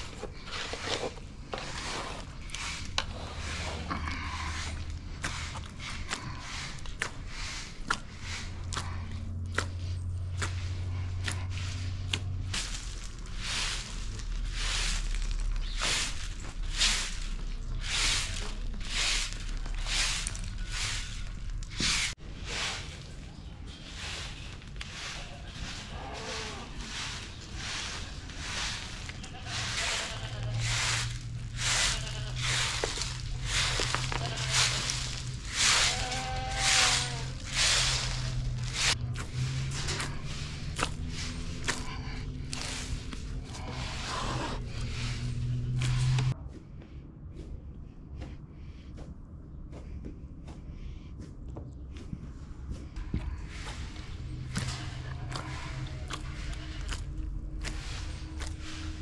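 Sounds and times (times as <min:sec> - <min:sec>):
broom sweeping concrete: 0:00.0 - 0:46.4, 0:52.7 - 0:59.0.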